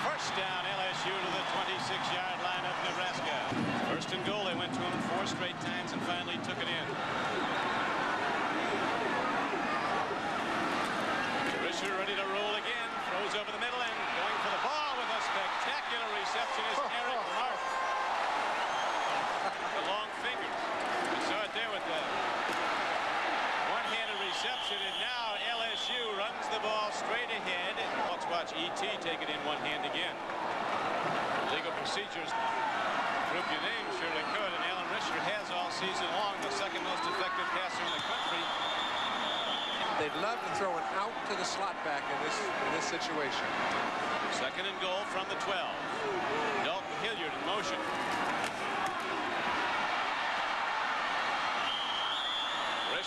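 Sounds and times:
stadium crowd cheering: 0.0 - 53.0
high whistle-like tones: 37.9 - 39.9.

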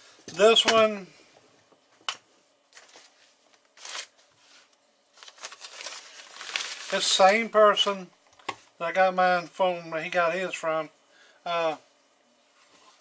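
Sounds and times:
plastic bag crinkling: 2.7 - 4.2, 5.1 - 7.5.

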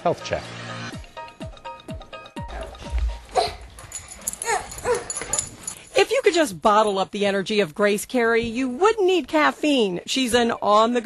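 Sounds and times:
dog whimpering: 2.5 - 5.8
low thump: 2.8 - 4.2.

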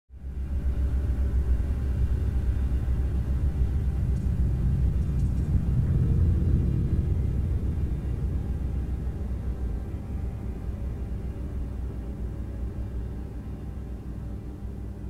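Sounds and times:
steady low rumble: 0.1 - 15.0.

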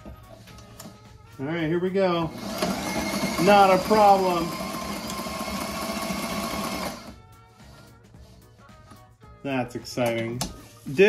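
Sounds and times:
sewing machine stitching: 2.3 - 7.2.

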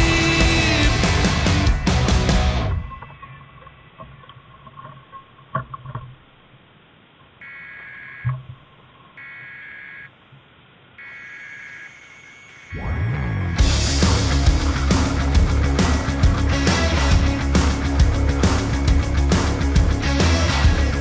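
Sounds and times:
crossing signal beeping: 7.4 - 8.5, 9.1 - 10.2, 11.0 - 13.8.

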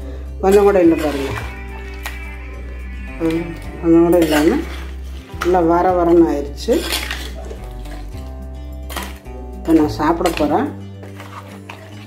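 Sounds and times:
background music: 0.0 - 12.0
metal spoon scraping clay pot: 0.4 - 12.0.

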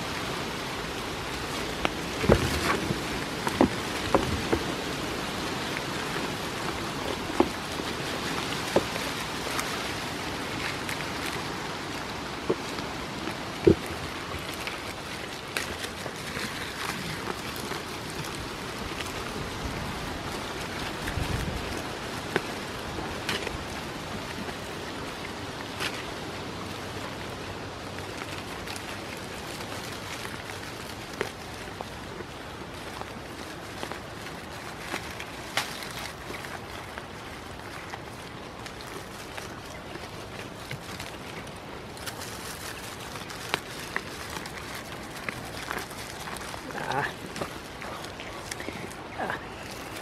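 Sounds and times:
leaves rustling as stripped: 0.0 - 50.0.

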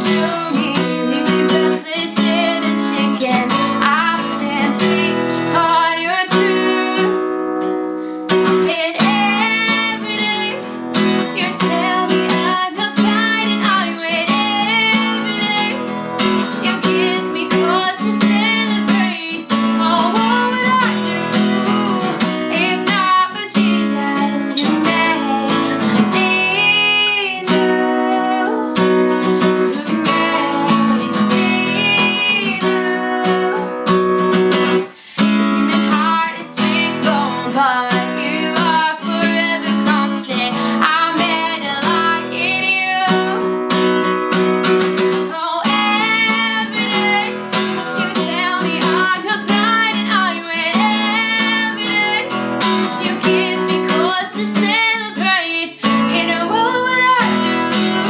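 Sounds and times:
strummed acoustic guitar: 0.0 - 58.0
woman singing: 0.0 - 58.0.

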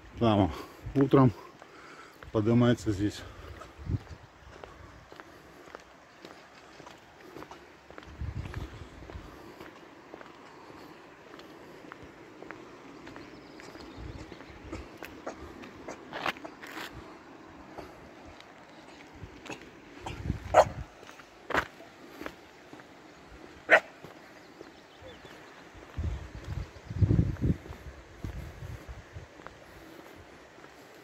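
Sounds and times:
dog barking: 20.5 - 20.8, 23.7 - 24.0.

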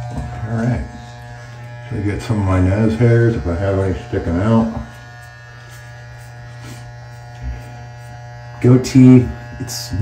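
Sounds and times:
hair trimmer buzzing: 0.0 - 10.0.

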